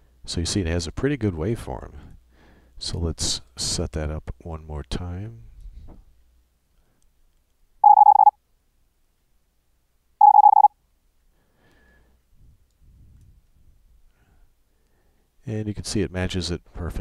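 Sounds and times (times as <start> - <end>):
morse code tone bursts: 7.8 - 8.3, 10.2 - 10.7.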